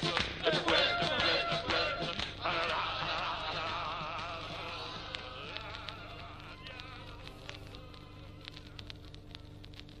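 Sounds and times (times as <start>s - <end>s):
faint music: 0.0s - 10.0s
vinyl clicks and pops: 0.0s - 10.0s
vinyl record surface noise: 0.0s - 10.0s
low buzzing hum: 0.4s - 10.0s.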